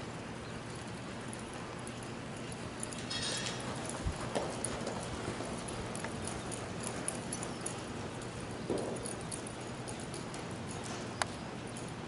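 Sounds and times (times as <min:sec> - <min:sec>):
horse hooves thudding on dirt: 0:00.3 - 0:12.0.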